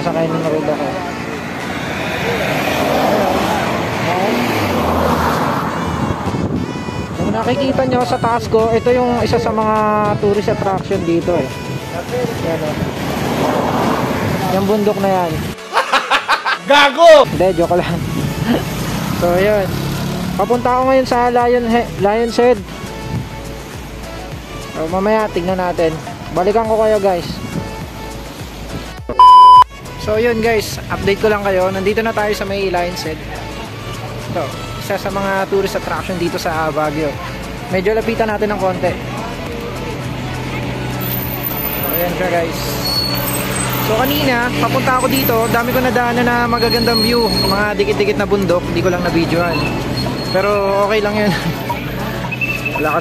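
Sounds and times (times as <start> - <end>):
wind rushing over microphone: 2.8 - 15.6
high electronic beep: 29.1 - 29.7.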